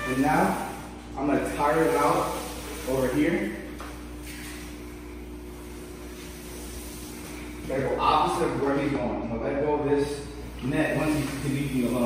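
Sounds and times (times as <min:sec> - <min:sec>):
constant equipment hiss: 0:00.0 - 0:12.0
mechanical hum: 0:00.0 - 0:12.0.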